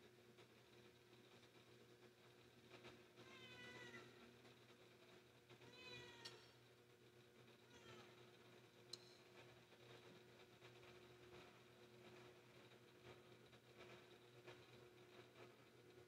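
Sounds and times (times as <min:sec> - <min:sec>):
cat meowing: 0:03.2 - 0:04.0, 0:05.7 - 0:06.4, 0:07.7 - 0:08.1.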